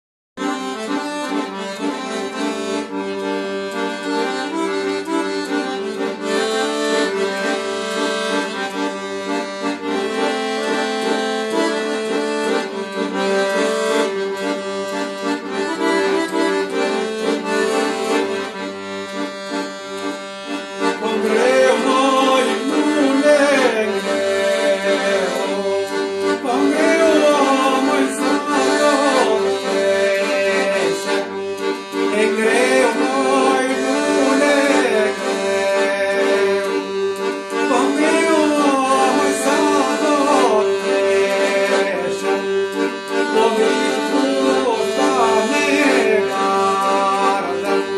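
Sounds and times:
piano accordion playing a folk tune: 0.4 - 47.9.

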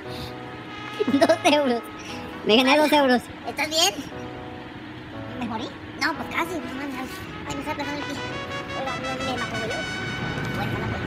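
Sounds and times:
steady buzzing drone: 0.0 - 11.0.

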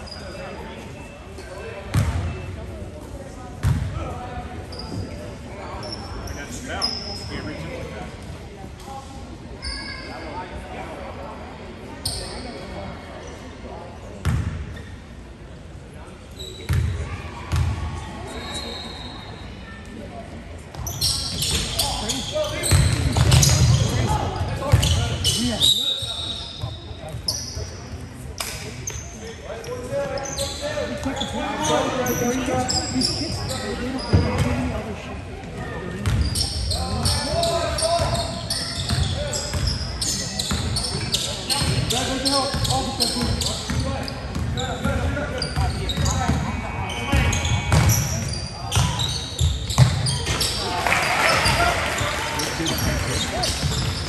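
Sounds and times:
sneakers squeaking: 0.0 - 7.7, 9.6 - 10.5, 12.0 - 13.5, 14.2 - 15.1, 16.3 - 19.8, 20.7 - 54.0
murmur of spectators: 0.0 - 54.0.

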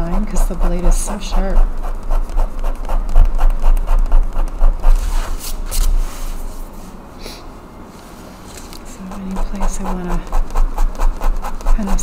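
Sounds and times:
blade scraping paint off paper: 0.0 - 6.0, 8.5 - 12.0.

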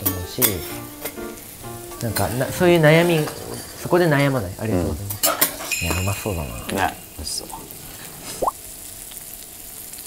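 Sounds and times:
asparagus sizzling in butter: 0.0 - 10.0.

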